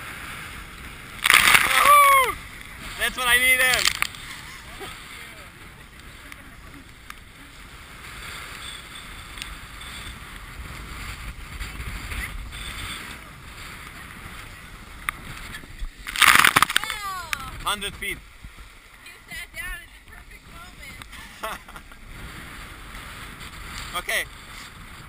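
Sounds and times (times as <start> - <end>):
water rushing along hull: 0.0 - 25.0
wind buffeting microphone: 0.0 - 25.0.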